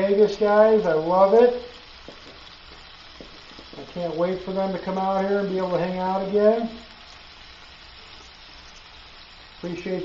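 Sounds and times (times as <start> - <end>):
steaks sizzling in a pan: 0.0 - 10.0.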